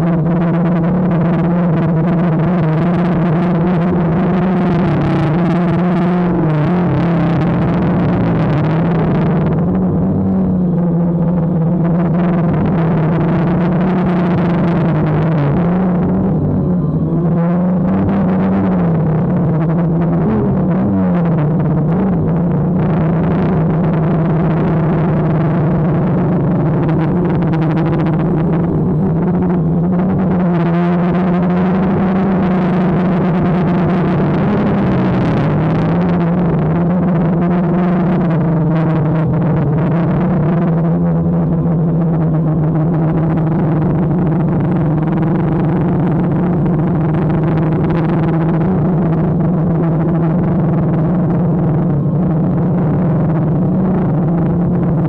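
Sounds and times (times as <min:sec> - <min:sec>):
drone propellers humming: 0:00.0 - 0:55.0.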